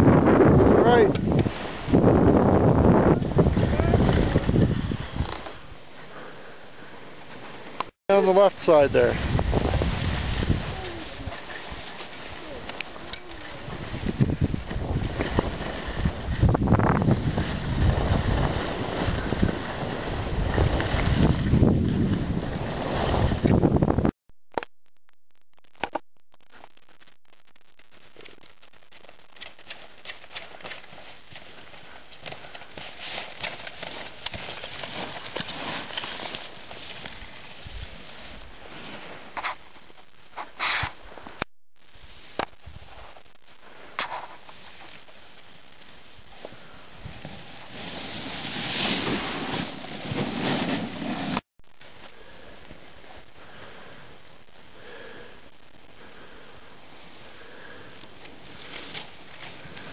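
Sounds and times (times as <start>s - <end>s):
wind rushing over microphone: 0.0s - 5.3s, 8.9s - 11.1s, 13.6s - 24.2s
crackles and clicks: 0.0s - 59.9s.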